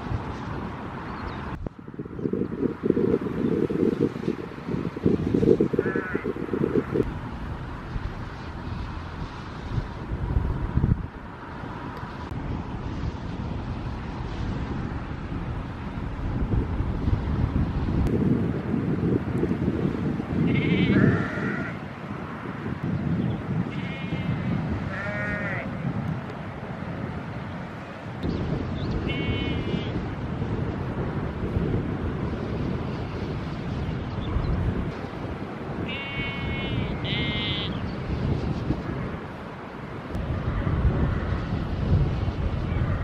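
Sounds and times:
sheep bleating: 0:05.8 - 0:06.3, 0:20.5 - 0:21.8, 0:23.7 - 0:25.8, 0:29.1 - 0:30.0, 0:35.8 - 0:37.8.

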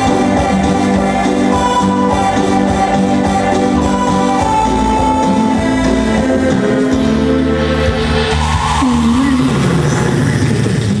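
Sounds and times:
amplified live band music: 0:00.0 - 0:11.0
rough low noise through speakers: 0:00.0 - 0:11.0.

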